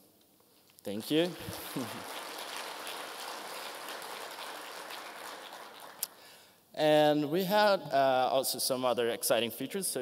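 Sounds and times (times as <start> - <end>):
audience applauding: 1.0 - 6.4.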